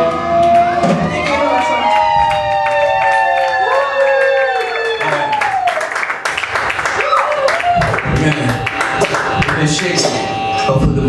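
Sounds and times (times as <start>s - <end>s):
crowd cheering: 0.0s - 10.8s
electric guitar feedback: 0.0s - 11.0s.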